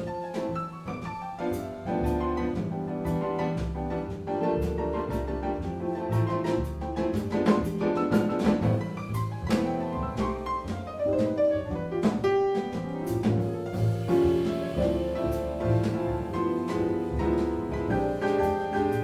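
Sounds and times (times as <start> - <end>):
double bass: 0.0 - 19.0
drums keeping time: 0.0 - 19.0
piano: 0.0 - 19.0.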